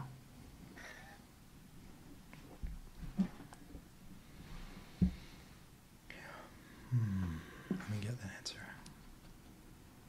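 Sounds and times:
man murmuring quietly: 6.1 - 8.8.

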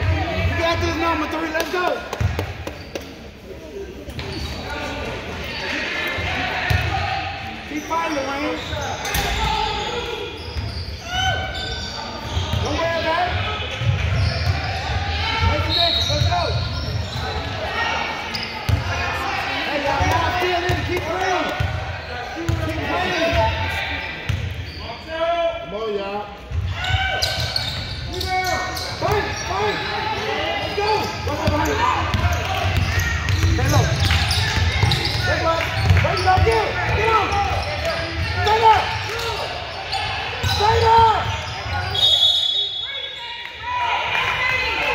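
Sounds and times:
voices echoing: 0.0 - 44.9.

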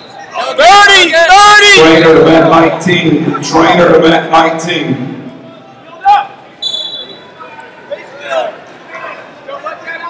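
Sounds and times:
voices calling out in hall: 0.0 - 10.0.

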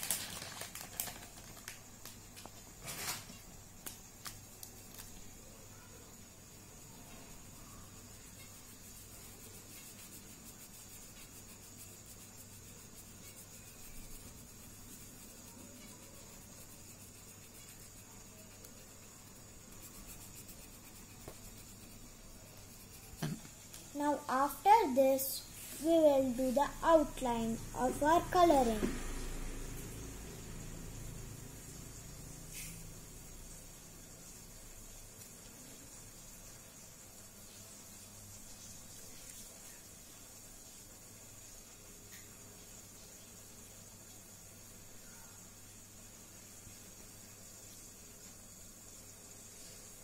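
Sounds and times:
plastic packet rustling: 0.0 - 2.2
faint room hum and hiss: 0.0 - 50.0.

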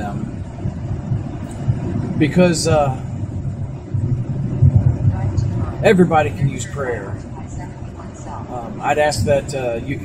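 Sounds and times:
car engine and tyre rumble: 0.0 - 10.0.

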